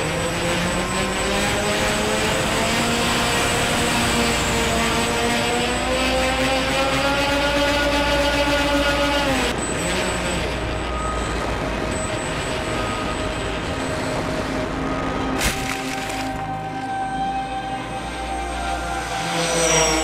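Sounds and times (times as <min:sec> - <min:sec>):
model airplane motor and propeller: 0:00.0 - 0:15.4, 0:19.0 - 0:20.0.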